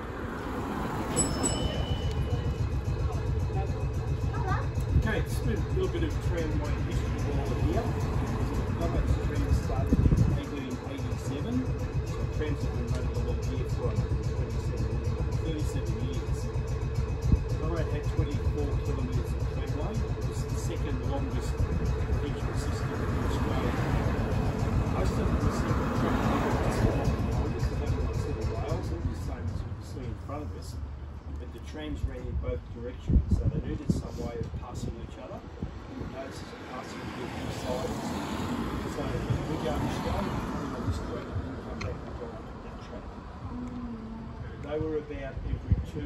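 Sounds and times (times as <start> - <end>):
car passing: 0.0 - 5.2, 21.7 - 31.5, 35.4 - 43.6
tram rumble and hum: 0.0 - 46.0.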